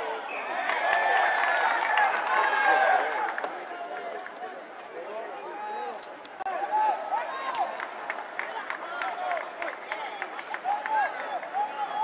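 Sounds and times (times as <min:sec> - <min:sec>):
loud shout: 0:00.0 - 0:03.8, 0:05.5 - 0:07.8, 0:08.4 - 0:12.0.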